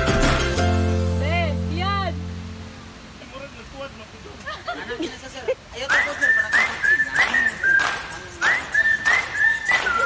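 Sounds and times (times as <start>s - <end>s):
voices: 3.1s - 10.0s
high swooping whistles: 5.9s - 10.0s.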